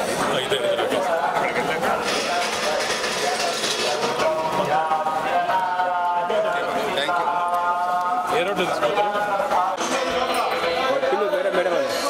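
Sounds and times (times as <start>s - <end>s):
people talking indistinctly: 0.0s - 12.0s
music: 1.0s - 12.0s.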